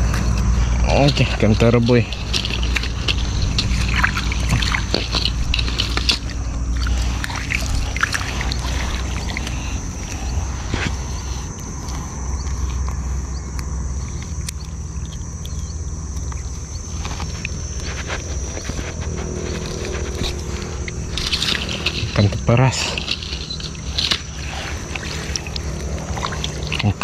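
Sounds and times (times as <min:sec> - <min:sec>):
water sloshing and splashing: 0:00.0 - 0:13.0, 0:16.1 - 0:27.0
steady low rumble: 0:00.0 - 0:27.0
thin high-pitched whine: 0:00.0 - 0:27.0.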